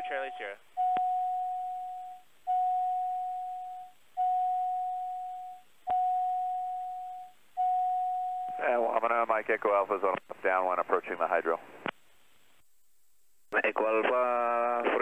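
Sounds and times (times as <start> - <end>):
cockpit warning beeps: 0.0 - 8.8.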